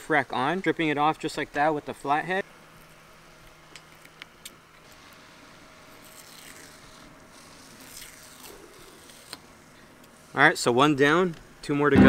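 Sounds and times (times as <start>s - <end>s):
soft scratchy tearing: 5.9s - 9.5s.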